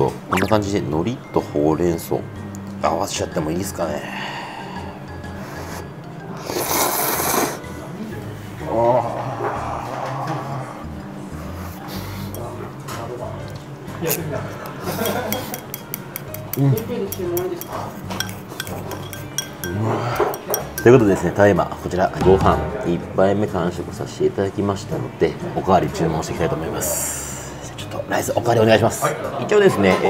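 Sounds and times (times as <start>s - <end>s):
background music: 0.0s - 30.0s
person slurping noodles: 5.4s - 7.6s
chopsticks clinking on bowl: 14.6s - 21.4s.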